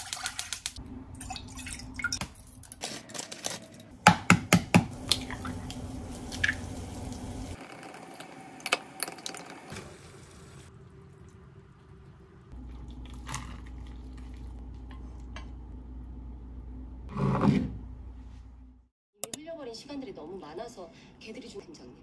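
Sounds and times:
wet pouring sounds: 0.0s - 2.8s, 5.0s - 14.6s.

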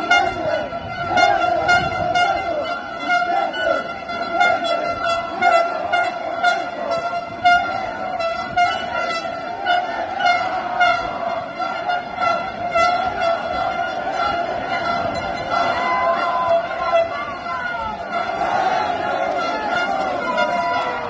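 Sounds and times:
horns blowing steady tones: 0.0s - 21.0s
marching crowd: 0.0s - 21.0s.

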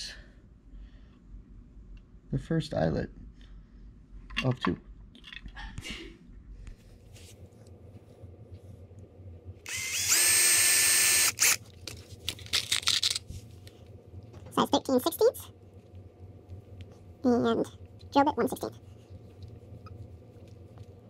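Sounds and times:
cordless drill drilling into wood: 9.7s - 11.6s.

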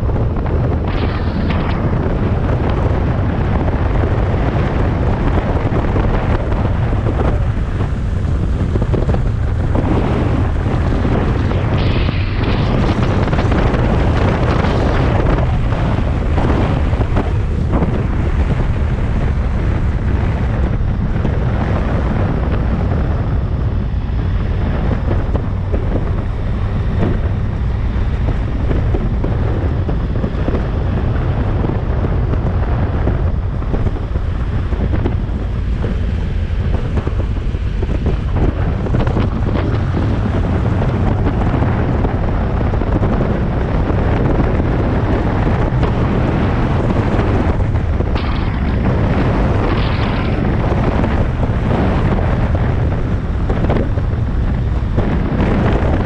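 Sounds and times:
motorcycle engine and tyres: 0.0s - 56.0s
wind noise on microphone: 0.0s - 56.0s.

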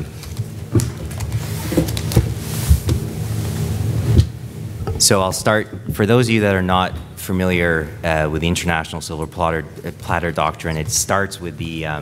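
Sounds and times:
papers rustling: 0.0s - 3.1s
steady low hum: 0.0s - 12.0s.

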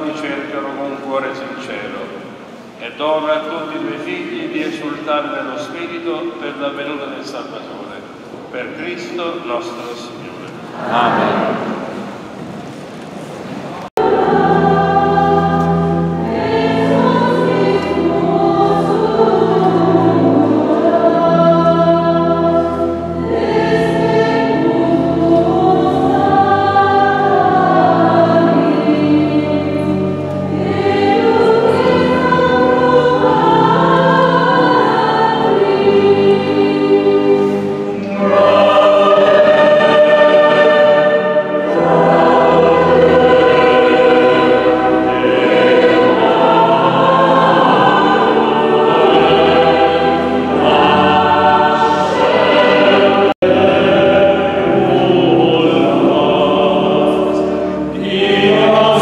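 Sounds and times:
choir singing a hymn: 0.0s - 12.5s, 13.7s - 59.0s.

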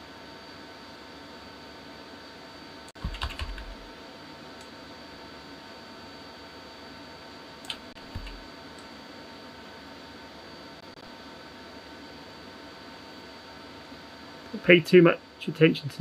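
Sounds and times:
keyboard keys clicking: 3.0s - 3.8s, 7.6s - 8.4s.

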